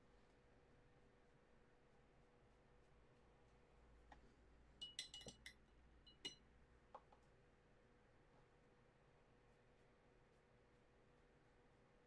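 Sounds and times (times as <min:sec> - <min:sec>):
paintbrush clinking on glass jar: 0:04.8 - 0:06.4.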